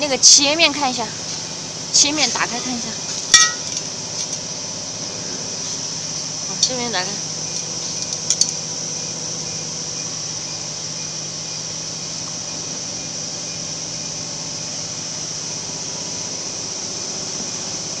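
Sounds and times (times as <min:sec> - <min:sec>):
workshop fans humming: 0:00.0 - 0:18.0.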